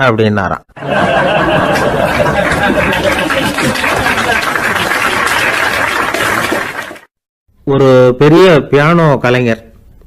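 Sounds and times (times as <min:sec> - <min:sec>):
audience applauding: 0:00.8 - 0:07.1.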